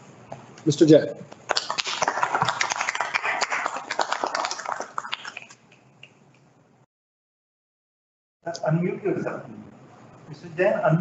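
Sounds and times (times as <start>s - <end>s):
small group applauding: 1.5s - 6.2s.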